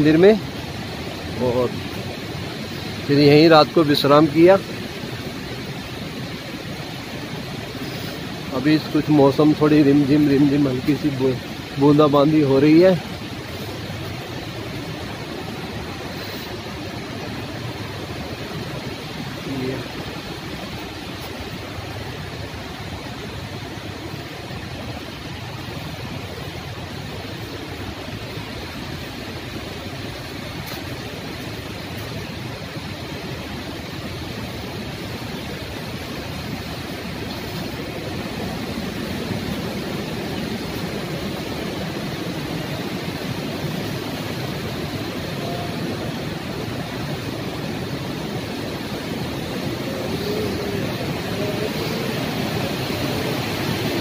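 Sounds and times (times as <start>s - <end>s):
fast river rushing: 0.0s - 54.0s.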